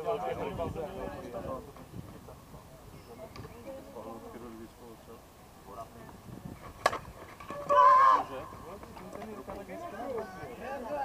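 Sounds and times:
distant talk: 0.0 - 6.3
bat cracking on ball: 6.8 - 7.8
person yelling: 7.6 - 8.4.

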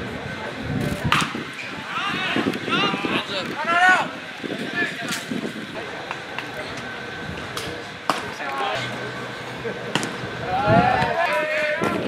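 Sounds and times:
spectators chattering and calling: 0.0 - 12.0
baseball striking: 1.1 - 1.5, 6.0 - 8.6, 9.9 - 10.4.

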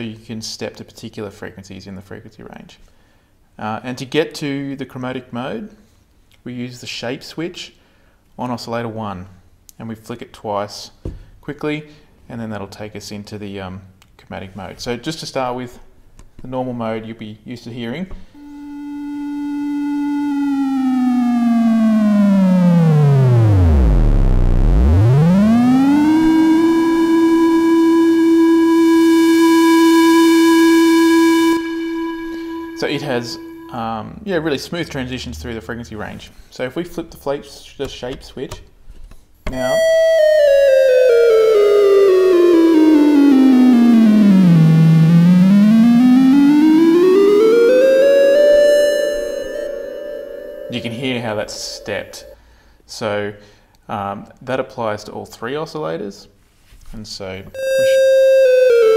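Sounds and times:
synthesizer drone gliding in pitch: 18.4 - 33.9, 39.8 - 52.4, 57.6 - 58.9.

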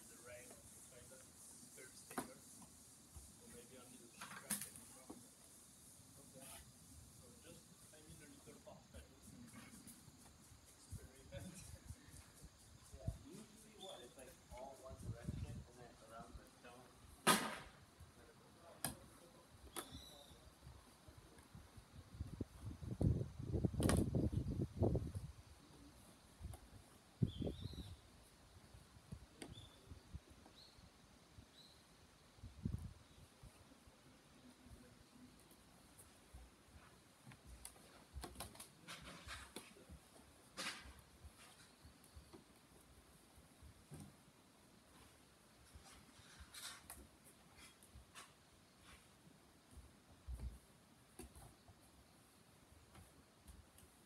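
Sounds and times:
faint bird chirps: 7.1 - 16.8, 19.2 - 20.7, 27.2 - 28.2, 29.3 - 32.0.

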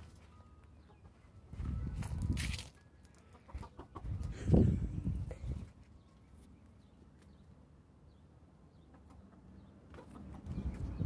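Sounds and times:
chickens clucking: 0.6 - 1.5, 3.0 - 5.8, 8.7 - 11.0.

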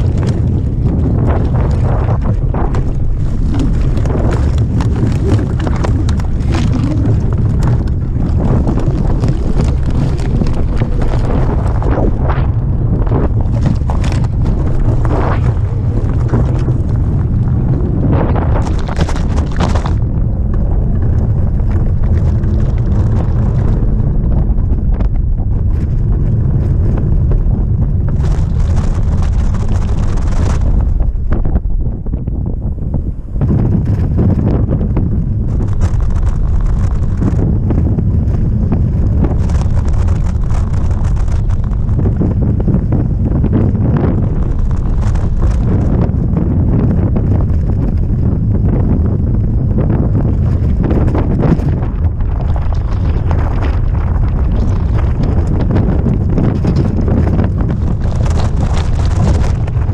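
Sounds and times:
vehicle noise: 0.0 - 31.0, 33.4 - 59.9
wind buffeting microphone: 0.0 - 59.9.

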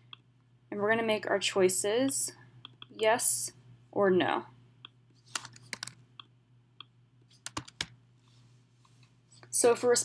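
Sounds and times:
faint steady hum: 0.0 - 10.0
typing on computer keyboard: 5.3 - 6.0, 7.4 - 8.0.

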